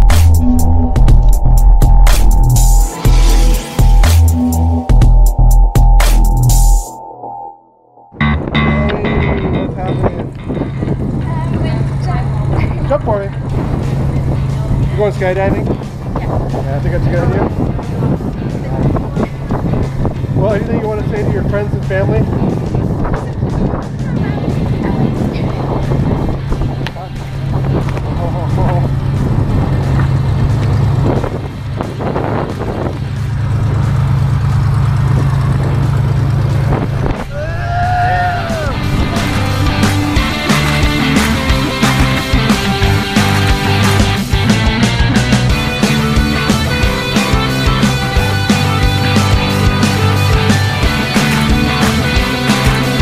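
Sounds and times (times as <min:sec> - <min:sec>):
wind buffeting microphone: 0:08.2 - 0:44.5.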